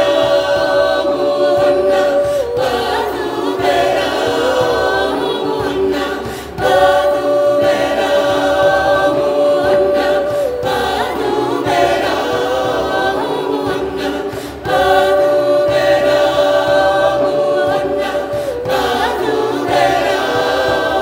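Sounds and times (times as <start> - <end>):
mixed choir singing a cappella: 0.0 - 21.0.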